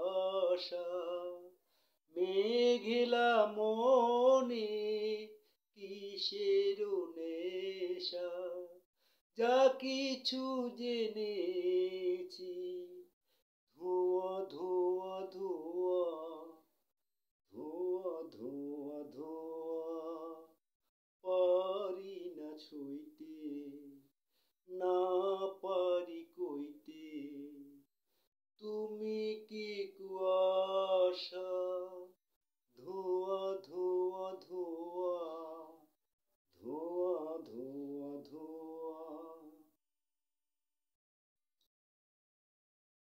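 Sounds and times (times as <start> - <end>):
man singing unaccompanied: 0.0 - 8.8, 9.4 - 16.7, 17.5 - 20.6, 21.2 - 27.9, 28.6 - 32.2, 32.8 - 39.8.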